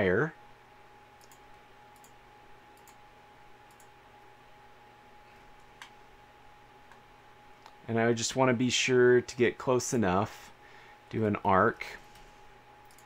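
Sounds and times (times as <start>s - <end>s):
faint steady hum: 0.0s - 13.0s
computer mouse clicks: 1.2s - 2.2s, 2.8s - 3.0s, 3.7s - 3.9s, 12.1s - 13.0s.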